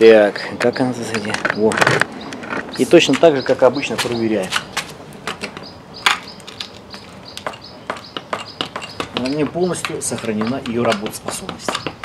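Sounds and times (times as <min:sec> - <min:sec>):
sharp clicks and knocks: 0:00.6 - 0:12.0.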